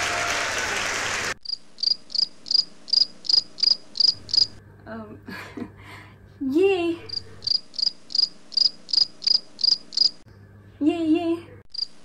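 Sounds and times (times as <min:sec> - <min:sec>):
cricket chirping: 0:01.4 - 0:04.6, 0:07.1 - 0:10.2, 0:11.7 - 0:12.0.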